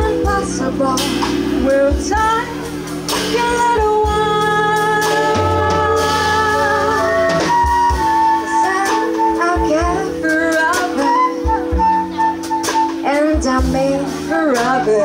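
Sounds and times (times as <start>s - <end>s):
drum kit: 0.0s - 15.0s
electric bass: 0.0s - 15.0s
flute: 0.0s - 15.0s
woman singing: 0.0s - 15.0s.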